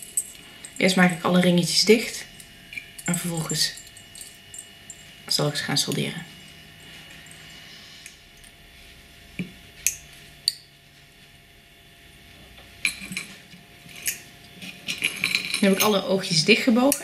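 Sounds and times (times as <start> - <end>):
metal rings clicking with pliers: 0.0 - 0.9, 13.9 - 16.1.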